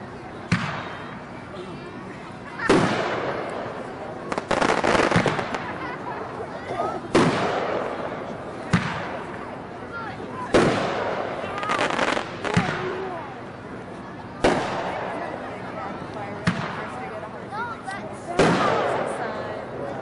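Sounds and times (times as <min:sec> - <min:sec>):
firework bangs: 0:00.5 - 0:01.1, 0:02.6 - 0:06.4, 0:07.1 - 0:09.7, 0:10.4 - 0:13.1, 0:14.4 - 0:15.5, 0:16.4 - 0:17.0, 0:18.3 - 0:19.2.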